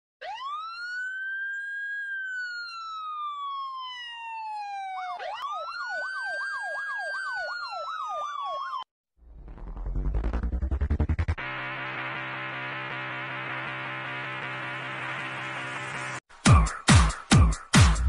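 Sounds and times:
siren yelp warbling: 0.2 - 10.5
siren wailing: 0.2 - 10.6
music: 9.6 - 18.0.

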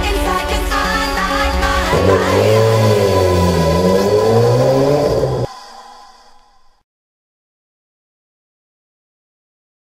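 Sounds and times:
car engine revving: 1.9 - 5.5.

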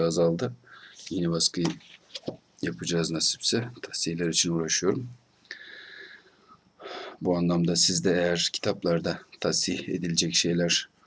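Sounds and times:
short in-breath: 5.5 - 7.2.

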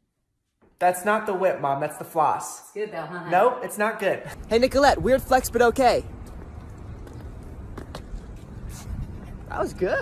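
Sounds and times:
low outdoor background rumble: 4.3 - 10.0.

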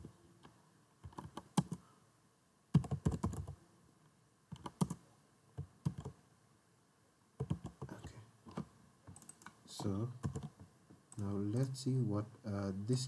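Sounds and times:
computer keyboard typing: 1.0 - 1.8, 2.8 - 3.6, 4.5 - 5.0, 5.6 - 6.2, 7.4 - 11.3.

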